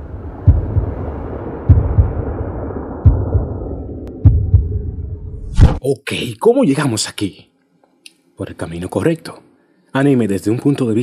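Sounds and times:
low rumble: 0.0 - 5.8
heartbeat thumps: 0.4 - 1.1, 1.7 - 5.0.

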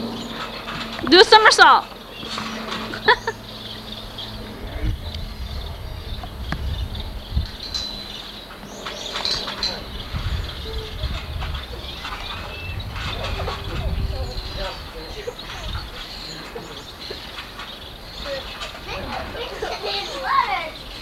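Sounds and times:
indistinct distant voices: 0.0 - 21.0
low rumble: 3.3 - 8.8, 9.4 - 16.3.

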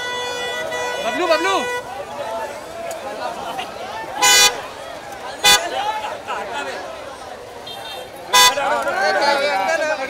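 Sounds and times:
car horn toots: 0.0 - 2.0, 4.2 - 4.6, 5.4 - 5.8, 7.6 - 8.8
crowd chatter: 0.0 - 10.0.

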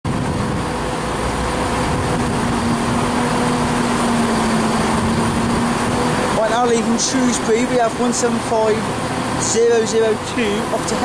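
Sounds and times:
steady hum: 0.1 - 11.0
train diesel engines droning: 0.1 - 11.0.

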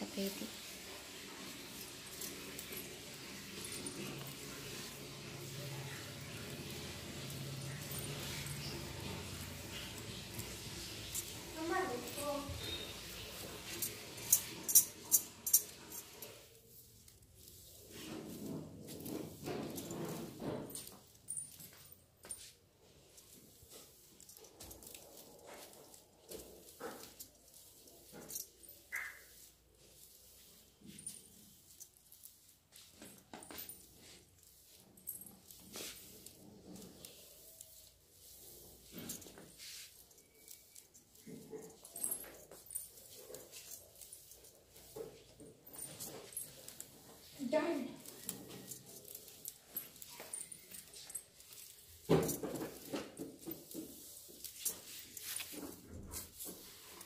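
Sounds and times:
broom sweeping tiled floor: 0.0 - 57.0.

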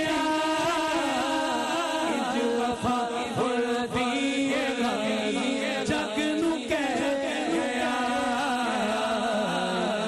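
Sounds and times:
men singing a devotional chant: 0.0 - 10.0.

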